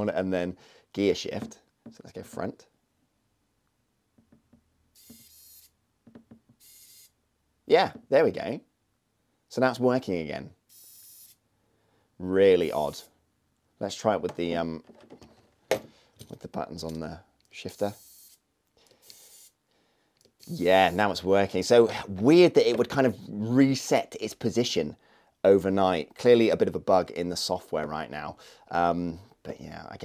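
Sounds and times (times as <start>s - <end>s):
derailleur motor whirring: 5.0s - 5.7s.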